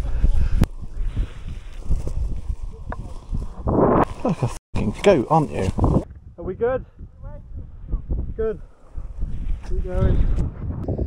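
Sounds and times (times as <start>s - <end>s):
wind buffeting microphone: 0.0s - 11.0s
person laughing: 4.1s - 4.6s.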